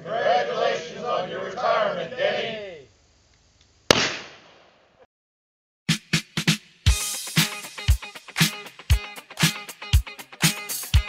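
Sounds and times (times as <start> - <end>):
gunshot volley: 3.9 - 4.7.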